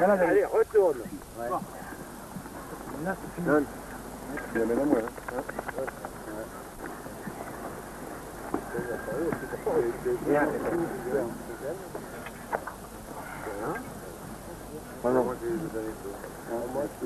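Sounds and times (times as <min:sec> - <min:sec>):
indistinct voices talking: 0:00.0 - 0:17.0
steady hiss: 0:00.0 - 0:17.0.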